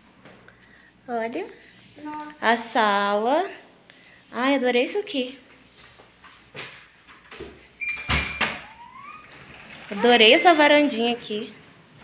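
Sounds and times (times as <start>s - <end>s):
door squeak: 7.8s - 11.0s
sliding glass door rumbling: 7.9s - 11.4s.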